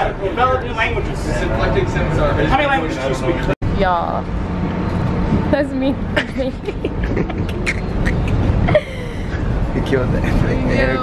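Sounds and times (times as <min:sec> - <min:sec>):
indistinct voices talking: 0:00.0 - 0:11.0
subway train rumbling: 0:00.0 - 0:11.0.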